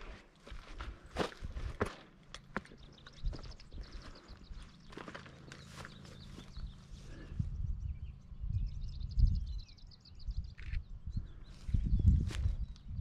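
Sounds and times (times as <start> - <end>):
footsteps on rock and dry grass: 0.0 - 7.3, 11.5 - 12.7.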